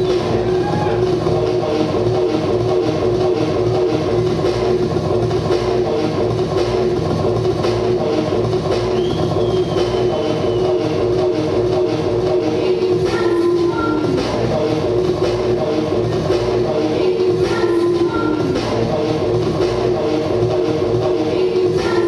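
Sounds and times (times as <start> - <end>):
repeating low beat: 0.0 - 22.0
synth drone: 0.0 - 22.0.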